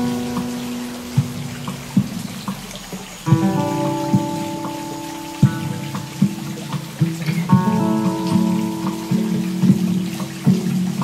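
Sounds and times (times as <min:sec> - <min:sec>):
fingerpicked acoustic guitar arpeggio: 0:00.0 - 0:02.6, 0:03.2 - 0:11.0
looped guitar layer: 0:00.0 - 0:11.0.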